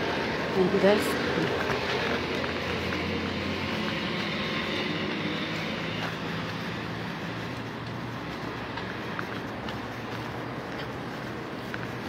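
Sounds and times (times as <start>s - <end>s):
road noise: 0.0s - 12.0s
vehicle engine hum: 0.0s - 12.0s.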